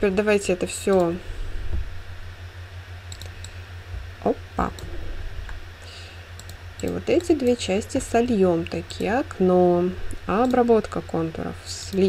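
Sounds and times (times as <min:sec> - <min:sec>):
steady low hum: 0:00.0 - 0:12.0
computer mouse clicks: 0:03.1 - 0:03.6, 0:06.4 - 0:07.4.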